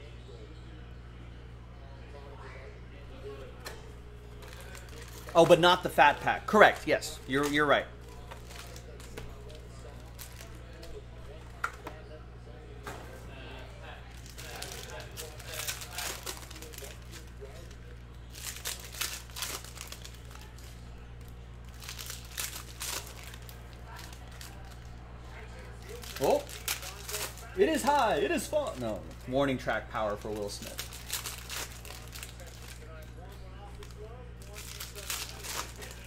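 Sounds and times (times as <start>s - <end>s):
steady low hum: 0.0s - 36.0s
foil packs tearing and crinkling: 4.4s - 10.9s, 14.0s - 20.8s, 21.6s - 24.9s, 25.6s - 33.0s, 33.7s - 36.0s.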